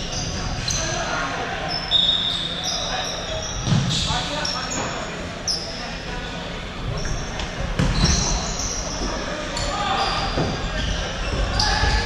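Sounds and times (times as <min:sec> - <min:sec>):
shoes squeaking on wooden floor: 0:06.9 - 0:12.0.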